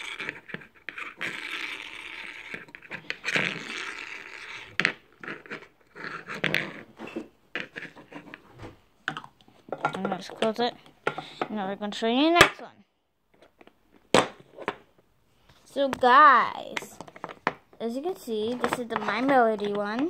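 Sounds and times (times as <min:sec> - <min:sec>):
plastic toy spinning scraping whir: 0:00.0 - 0:07.0.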